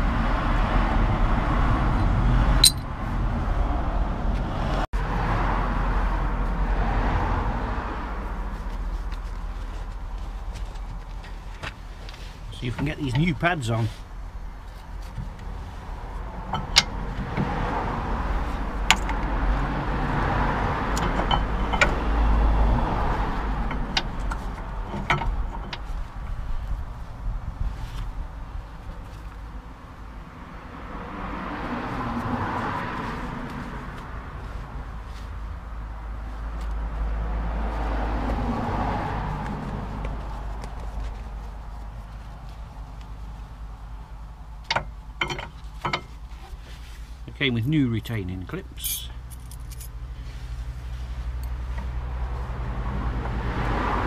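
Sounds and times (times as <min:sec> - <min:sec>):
cars passing on road: 0:00.0 - 0:54.0
metallic clicks and knocks: 0:02.6 - 0:02.9, 0:44.6 - 0:46.1.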